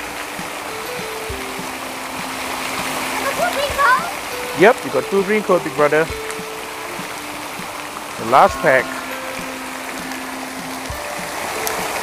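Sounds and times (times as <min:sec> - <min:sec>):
long held notes: 0:00.0 - 0:12.0
water falling: 0:00.0 - 0:12.0
person's voice: 0:08.2 - 0:09.0.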